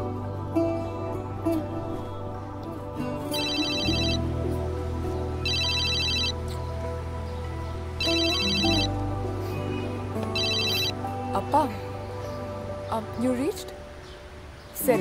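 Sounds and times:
background music: 0.0 - 15.0
mobile phone ringtone trilling: 3.3 - 4.2, 5.4 - 6.4, 8.0 - 8.9, 10.4 - 11.0.

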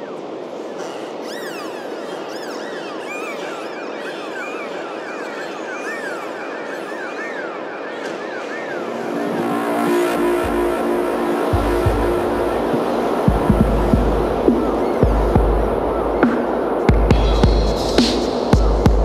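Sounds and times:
swooping electronic chirps: 5.0 - 18.8
noise wash: 6.1 - 19.0
sustained synth notes: 8.4 - 19.0
deep bass: 10.2 - 16.2.

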